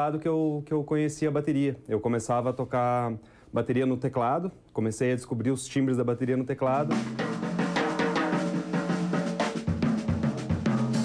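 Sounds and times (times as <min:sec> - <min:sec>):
quick snare drum strokes: 0:06.8 - 0:11.0
bass drum kicks: 0:09.6 - 0:11.0.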